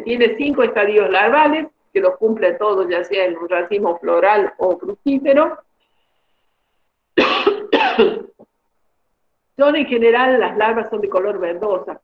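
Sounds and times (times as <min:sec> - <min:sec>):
person coughing: 0:07.2 - 0:08.4.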